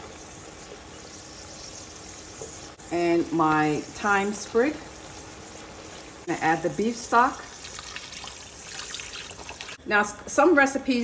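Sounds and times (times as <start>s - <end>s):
liquid pouring into a pot: 7.4s - 9.8s.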